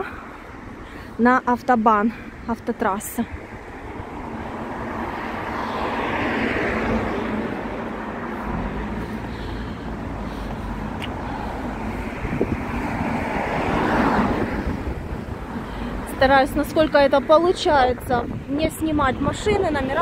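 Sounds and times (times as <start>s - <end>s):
cars passing: 0.0s - 20.0s.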